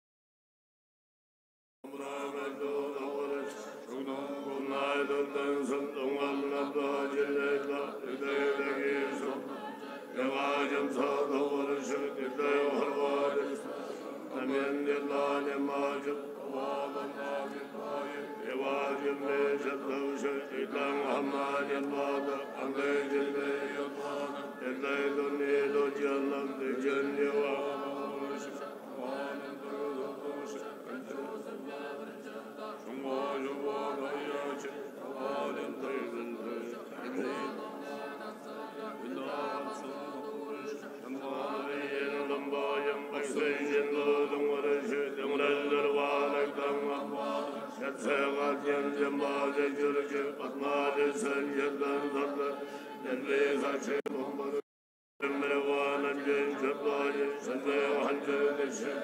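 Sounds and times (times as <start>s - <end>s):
monks chanting in unison: 1.9s - 54.6s, 55.2s - 59.0s.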